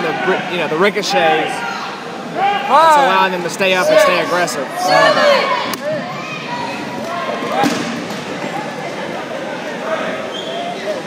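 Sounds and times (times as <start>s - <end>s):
players' voices and shouts: 0.0s - 11.0s
dodgeball smack: 7.4s - 8.3s.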